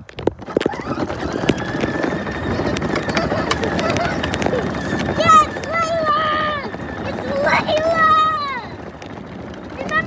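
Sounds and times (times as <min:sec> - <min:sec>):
plastic wheels rolling on asphalt: 0:00.0 - 0:10.0.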